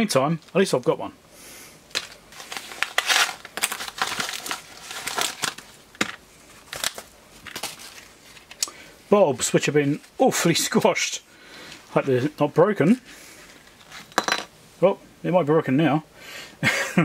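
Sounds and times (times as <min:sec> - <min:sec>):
packaging crinkling and tearing: 0:01.9 - 0:08.7.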